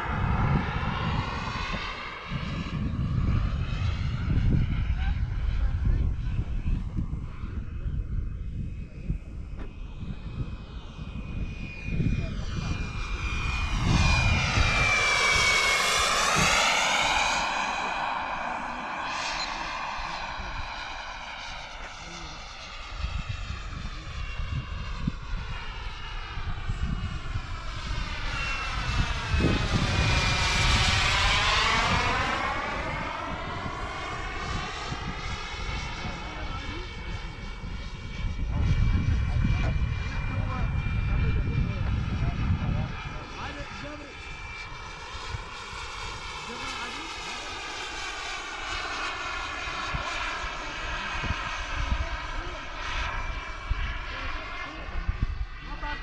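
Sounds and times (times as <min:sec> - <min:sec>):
model jet turbine whine: 0:00.0 - 0:56.0.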